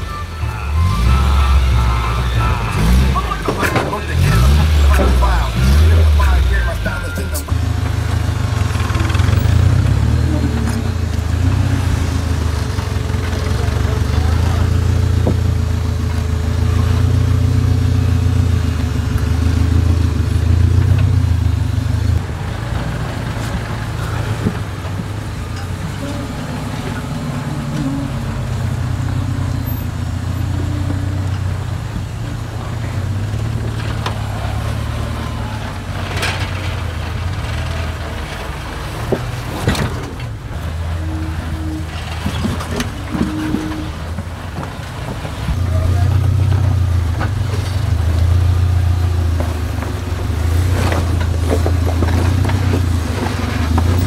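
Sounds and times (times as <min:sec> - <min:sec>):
off-road engines rumbling: 0:00.0 - 0:54.0.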